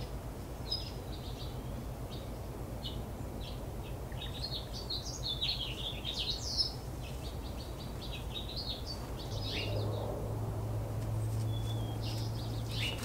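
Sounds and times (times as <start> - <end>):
small songbirds chirping: 0.0 - 13.0
steady low background rumble: 0.0 - 13.0
low hum: 6.8 - 13.0.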